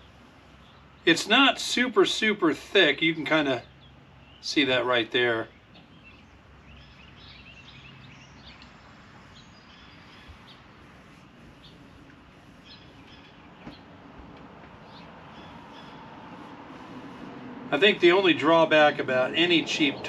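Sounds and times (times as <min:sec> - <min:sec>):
small birds chirping: 0:00.0 - 0:01.3, 0:02.8 - 0:17.2.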